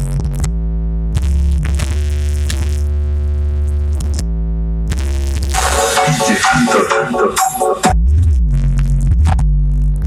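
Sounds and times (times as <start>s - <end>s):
deep synth bass note: 4.3s - 8.7s.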